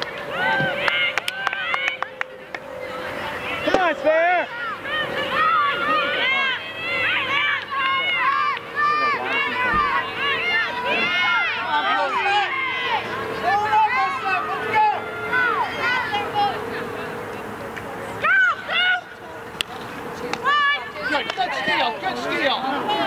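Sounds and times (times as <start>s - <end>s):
players and spectators calling and cheering: 0.0s - 23.0s.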